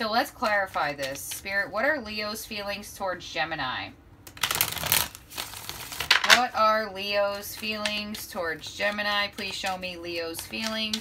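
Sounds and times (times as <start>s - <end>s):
cards being shuffled: 4.3s - 6.6s, 7.3s - 11.0s.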